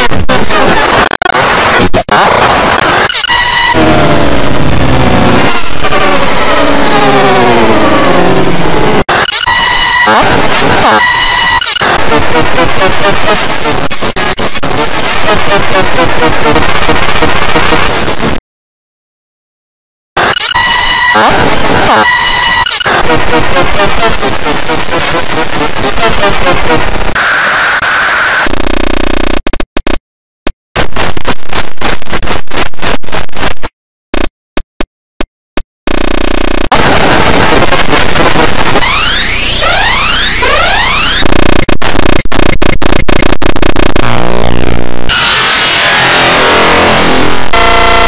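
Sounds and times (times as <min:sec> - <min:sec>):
distorted electronic horn-like blare: 0:00.0 - 0:18.4, 0:20.2 - 0:29.4, 0:35.9 - 0:48.0
distorted high whine over hiss: 0:20.2 - 0:28.5, 0:36.7 - 0:42.0, 0:43.0 - 0:48.0
coarse buzzing drone: 0:43.9 - 0:48.0.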